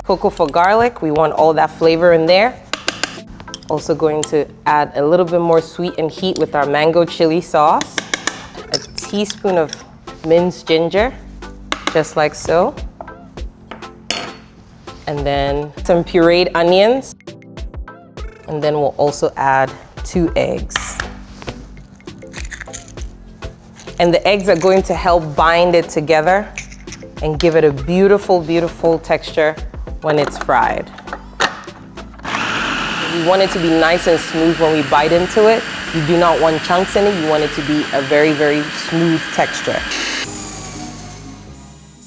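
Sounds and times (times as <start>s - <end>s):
soft background music: 0.0s - 42.0s
spoon clinking against bowls: 8.0s - 9.9s
spoon scraping bowl: 21.7s - 25.0s, 26.5s - 27.2s
food processor whirring: 32.2s - 41.6s.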